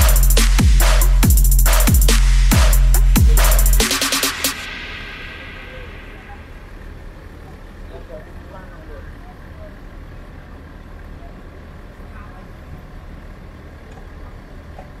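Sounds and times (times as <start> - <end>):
steady low rumble: 0.0 - 10.0
faint crowd voices: 4.6 - 13.4.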